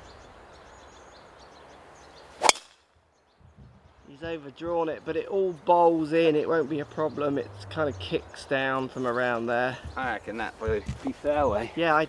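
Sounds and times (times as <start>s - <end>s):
outdoor background hiss: 0.0s - 12.0s
golf club striking ball: 2.4s - 2.8s.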